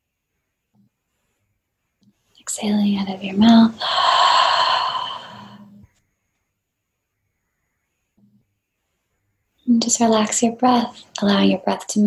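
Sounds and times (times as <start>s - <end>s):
faint hum: 0.0s - 12.0s
woman exhaling sigh: 3.8s - 5.7s.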